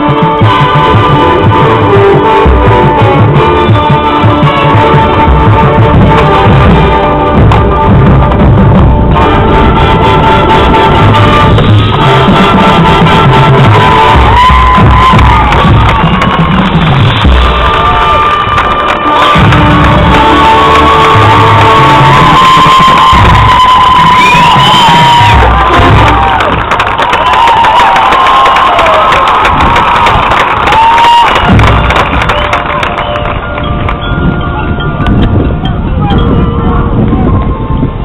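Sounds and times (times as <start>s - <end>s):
marching band playing: 0.0s - 37.1s
crowd cheering and whooping: 13.2s - 35.1s.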